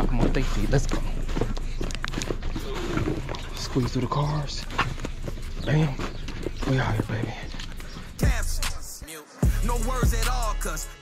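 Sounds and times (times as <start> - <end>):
footsteps on asphalt: 0.0 - 10.3.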